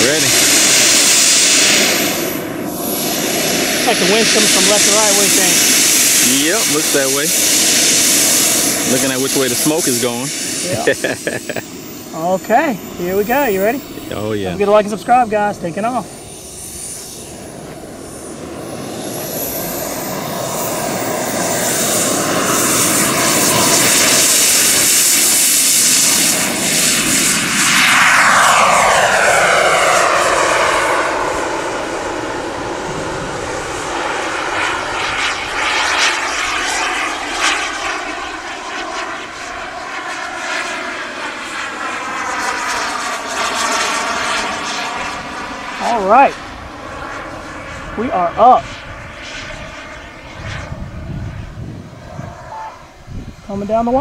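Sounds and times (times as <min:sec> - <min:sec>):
model jet turbine whine: 0:00.0 - 0:54.0.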